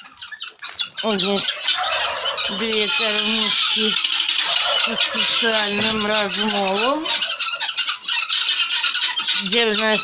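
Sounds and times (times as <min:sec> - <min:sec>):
guineafowl squawking: 0:00.0 - 0:10.0.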